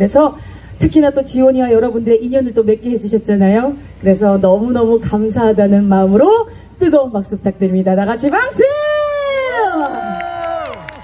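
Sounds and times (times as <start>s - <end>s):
woman cheering into a microphone: 8.5s - 11.0s
crowd whooping and cheering: 9.0s - 11.0s.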